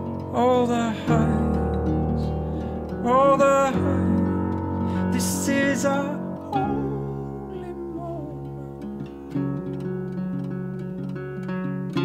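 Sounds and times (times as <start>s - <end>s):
acoustic guitar picked: 0.0s - 12.0s
sustained piano chords: 0.0s - 12.0s
man singing held note: 5.0s - 8.8s.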